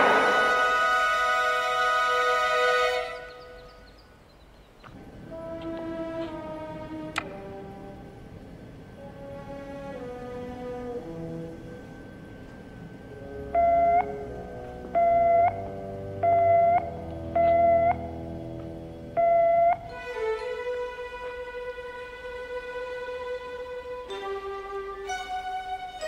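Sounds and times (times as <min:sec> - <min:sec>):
orchestral strings music: 0:00.0 - 0:03.8, 0:05.1 - 0:26.0
loud electronic beeps: 0:15.0 - 0:15.6, 0:16.2 - 0:18.0, 0:19.2 - 0:19.8.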